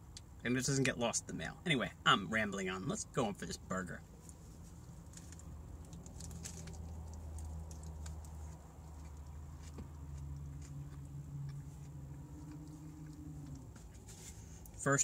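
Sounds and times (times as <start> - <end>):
low hum: 4.0 - 15.0
person chewing food: 4.3 - 14.1.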